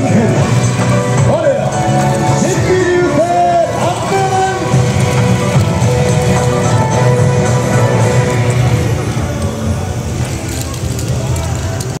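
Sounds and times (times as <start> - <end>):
low outdoor rumble: 0.0 - 12.0
mixed voices: 0.0 - 12.0.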